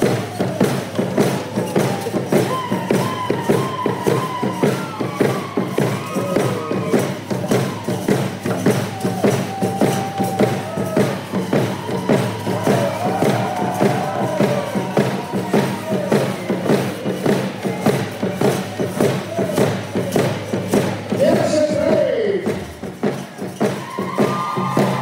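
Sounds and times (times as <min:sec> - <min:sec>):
steady pounding beat: 0:00.0 - 0:25.0.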